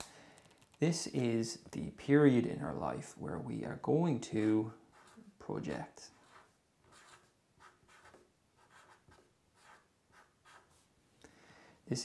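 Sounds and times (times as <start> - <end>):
marker scratching on paper: 4.3 - 5.4, 6.2 - 10.9.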